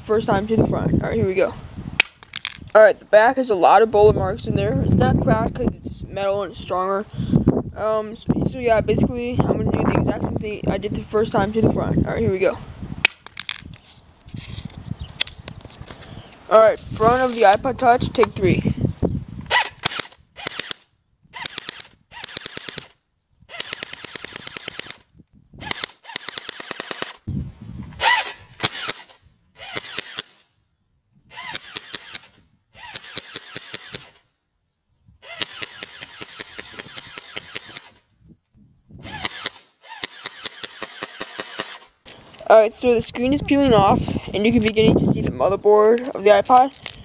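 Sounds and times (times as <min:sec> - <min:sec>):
airsoft gun rapid firing: 0:19.6 - 0:20.8, 0:21.4 - 0:22.9, 0:23.6 - 0:25.0, 0:25.6 - 0:27.3, 0:29.7 - 0:30.4, 0:32.9 - 0:34.2, 0:35.3 - 0:38.0, 0:39.1 - 0:41.9.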